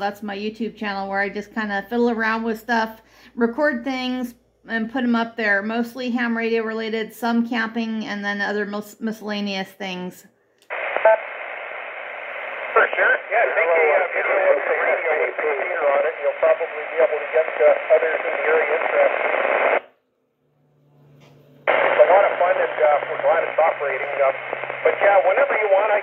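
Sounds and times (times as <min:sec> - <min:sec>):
tinny radio voice: 0:12.2 - 0:19.8, 0:21.7 - 0:26.0.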